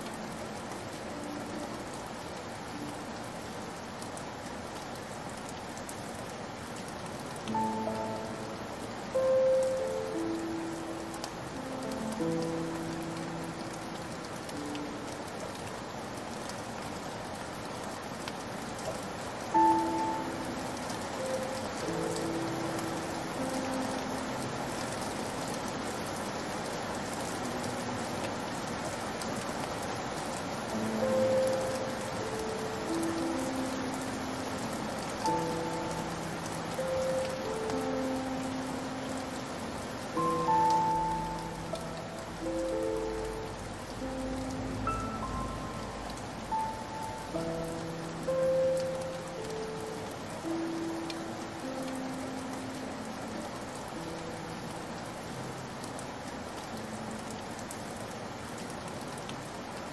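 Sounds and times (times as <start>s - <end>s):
slow sad piano melody: 0.0s - 59.9s
steady rain: 0.0s - 59.9s.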